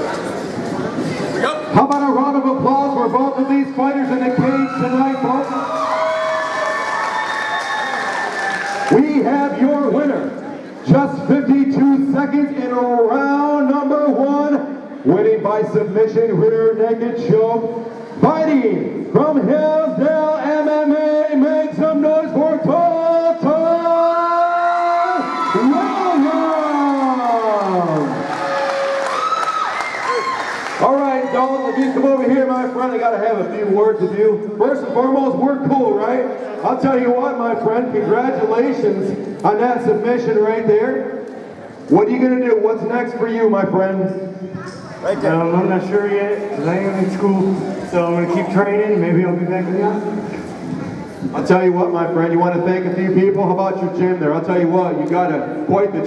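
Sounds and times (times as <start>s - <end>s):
crowd cheering: 4.0s - 10.0s, 24.2s - 33.0s.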